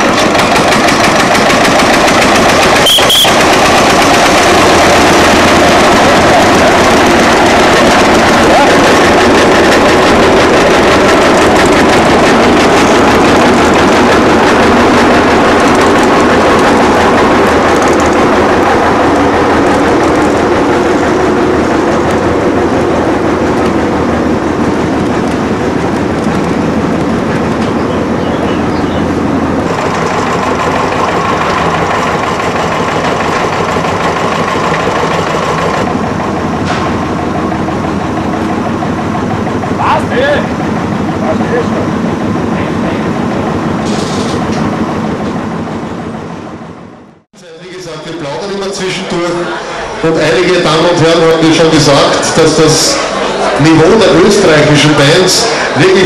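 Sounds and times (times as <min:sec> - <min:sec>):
tractor engine running: 0:00.0 - 0:56.0.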